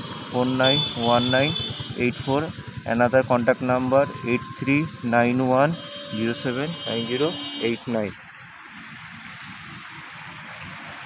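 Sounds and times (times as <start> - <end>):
fountain water splashing: 0.0 - 11.0.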